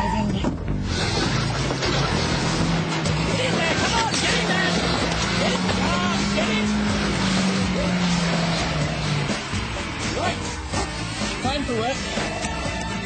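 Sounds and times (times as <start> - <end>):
rough rushing noise: 0.8 - 12.4
car engine at high revs: 0.8 - 13.0.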